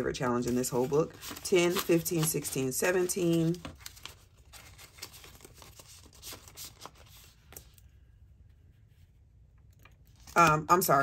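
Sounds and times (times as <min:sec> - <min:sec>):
paper banknotes rustling: 0:00.0 - 0:07.8.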